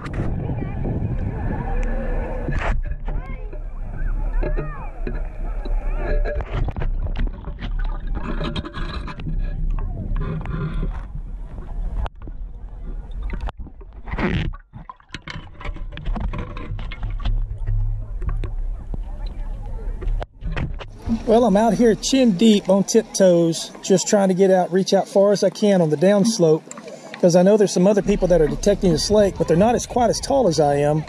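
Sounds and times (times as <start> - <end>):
water sloshing and splashing: 1.2 - 31.0.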